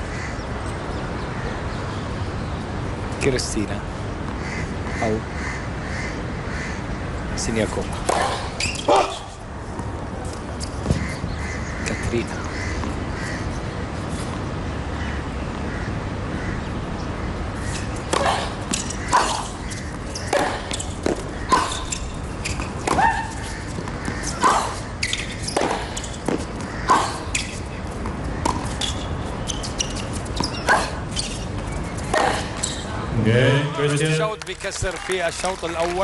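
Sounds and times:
crowd and stadium ambience: 0.0s - 36.0s
rackets hitting tennis ball: 17.8s - 32.8s.

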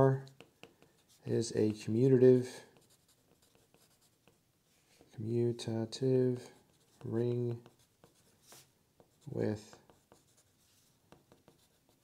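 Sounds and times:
pencil scratching on paper: 0.0s - 5.1s, 6.4s - 12.0s.

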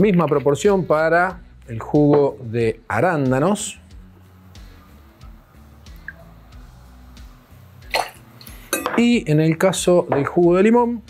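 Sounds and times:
quiet background music: 0.0s - 11.0s
metal jigger and glassware clinks: 7.9s - 9.2s.

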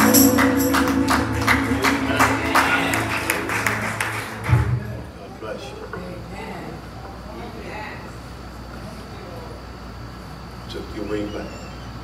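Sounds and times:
tambourine beats: 0.0s - 1.9s
sustained low bass: 0.0s - 5.2s.

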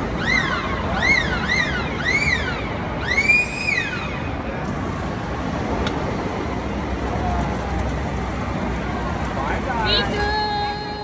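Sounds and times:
indoor amusement park din: 0.0s - 11.0s
faint voices: 4.2s - 11.0s.

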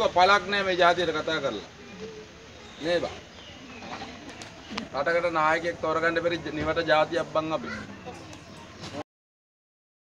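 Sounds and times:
man speaking: 0.0s - 1.7s, 2.8s - 3.2s, 4.9s - 7.9s
bird cooing: 1.5s - 5.0s.

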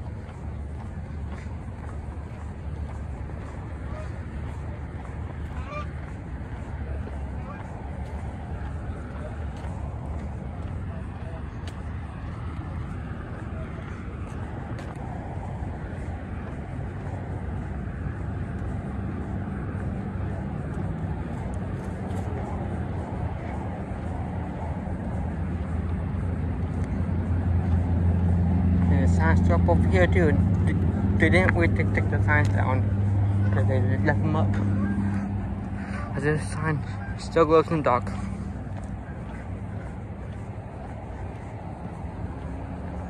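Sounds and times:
distant road traffic rumble: 0.0s - 43.0s.

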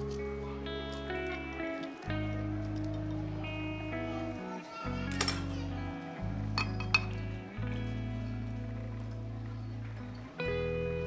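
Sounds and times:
background music: 0.0s - 11.0s
steel bowl clinking: 6.6s - 7.2s.

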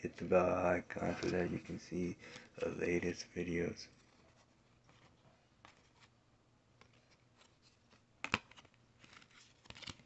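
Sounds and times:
trading cards rustling and ticking: 6.8s - 10.0s.

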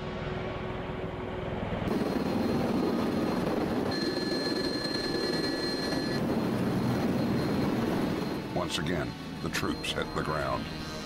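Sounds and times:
aircraft rotor and engine noise: 0.0s - 11.0s
thin high whine: 1.9s - 11.0s.

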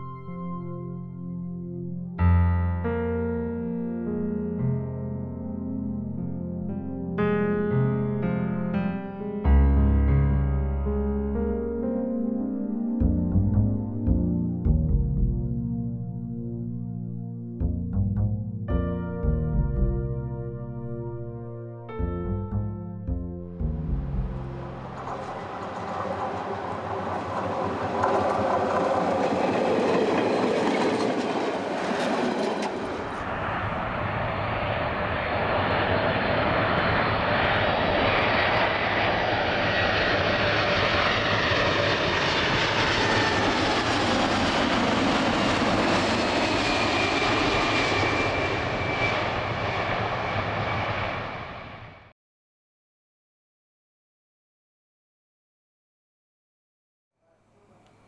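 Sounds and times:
whine sliding in pitch: 23.1s - 29.6s, 32.9s - 52.1s
jet engines roaring: 24.4s - 52.1s.

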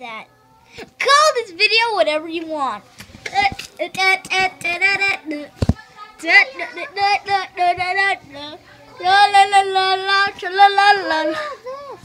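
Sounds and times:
child singing: 1.0s - 12.0s.

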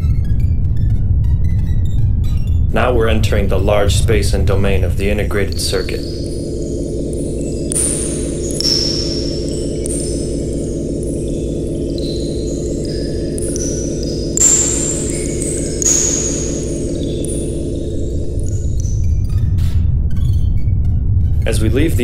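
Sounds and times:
low synthetic drone: 0.0s - 22.0s
high-pitched pings and blips: 5.3s - 19.2s.

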